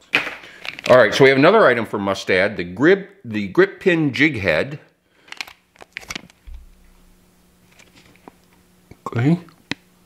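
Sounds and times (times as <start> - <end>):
plastic packet crinkling: 0.6 - 1.1, 5.2 - 6.6.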